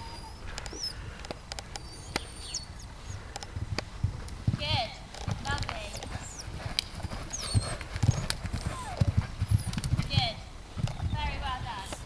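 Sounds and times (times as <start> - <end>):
whistled bird calls: 1.8 - 3.2, 7.0 - 9.8
dull hoofbeats: 3.2 - 12.0.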